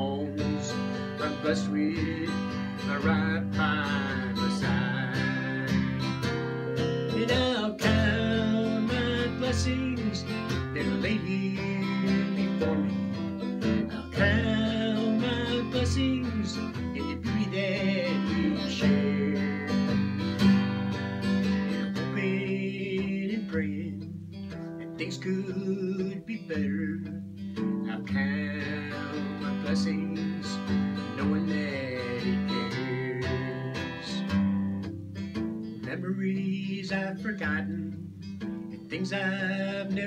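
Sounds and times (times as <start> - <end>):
man singing: 0.0 - 24.2, 24.8 - 34.6, 35.7 - 40.0
acoustic guitar strumming: 0.0 - 40.0.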